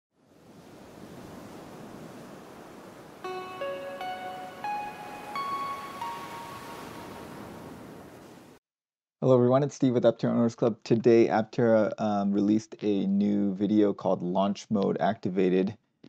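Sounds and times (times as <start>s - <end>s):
steady rushing surf noise: 0.4s - 8.6s
rising chime notes: 3.2s - 8.1s.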